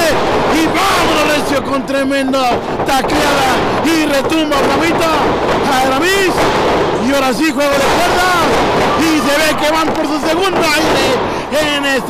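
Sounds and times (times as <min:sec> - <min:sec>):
commentator shouting excitedly: 0:00.0 - 0:06.4, 0:07.1 - 0:12.0.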